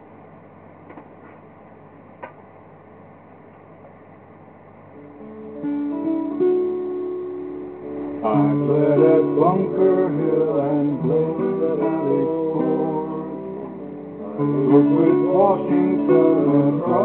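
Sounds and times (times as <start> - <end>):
acoustic guitar strumming chords: 5.2 - 17.0.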